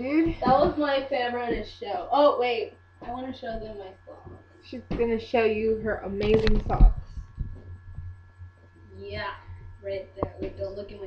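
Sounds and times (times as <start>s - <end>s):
low electrical hum: 0.0s - 11.0s
dull low thumps: 0.1s - 1.7s, 3.0s - 11.0s.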